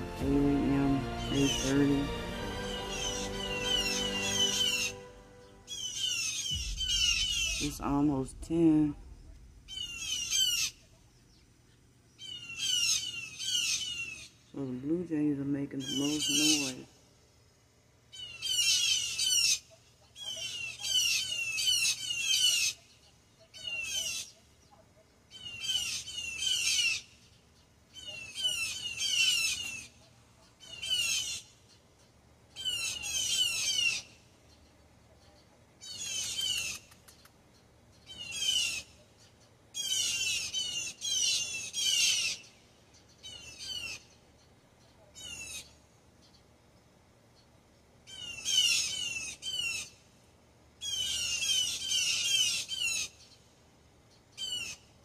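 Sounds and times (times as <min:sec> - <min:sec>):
blue jays harsh alarm calls: 0:00.0 - 0:08.6, 0:09.6 - 0:11.0, 0:12.2 - 0:14.4, 0:15.7 - 0:16.9, 0:18.1 - 0:24.4, 0:25.3 - 0:27.2, 0:27.9 - 0:31.8, 0:32.6 - 0:34.2, 0:35.8 - 0:36.9, 0:37.9 - 0:44.2, 0:45.2 - 0:46.4, 0:48.0 - 0:50.0, 0:50.8 - 0:53.4, 0:54.3 - 0:54.9.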